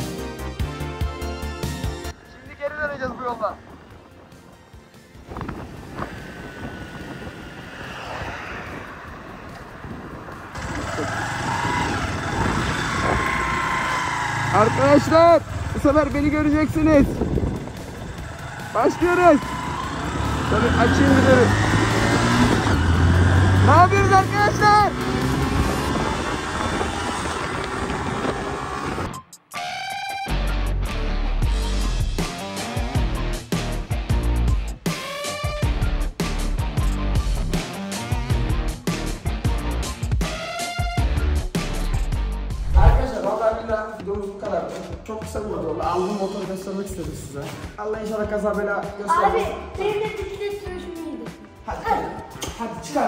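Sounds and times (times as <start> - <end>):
music: 0.0 - 6.2, 29.0 - 53.0
motorcycle engine: 3.1 - 29.2
wind noise on microphone: 5.1 - 13.8, 16.6 - 18.5, 25.3 - 29.1, 42.6 - 43.2.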